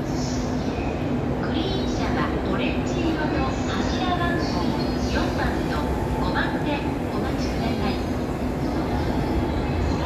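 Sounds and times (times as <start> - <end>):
train rumbling into platform: 0.0 - 10.0.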